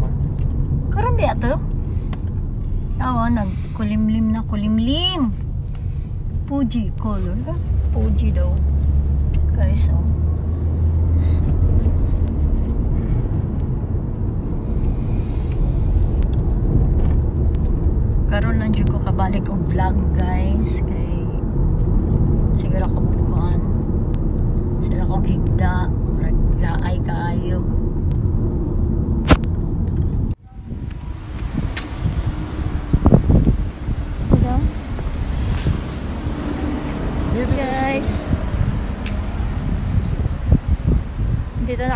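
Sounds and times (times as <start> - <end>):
car engine rumble: 0.0 - 41.9
road noise: 0.0 - 41.9
wind buffeting microphone: 0.0 - 41.9.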